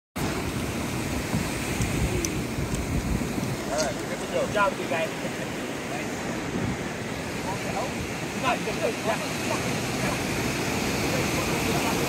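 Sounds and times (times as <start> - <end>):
ocean surf breaking: 0.2 - 12.0.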